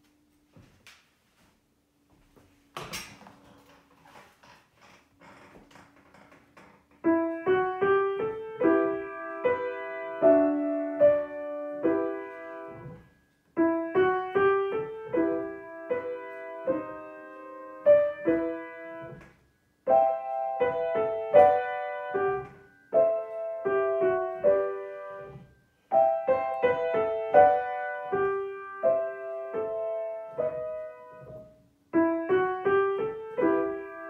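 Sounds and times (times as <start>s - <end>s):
piano playing slow melody: 7.0s - 34.0s.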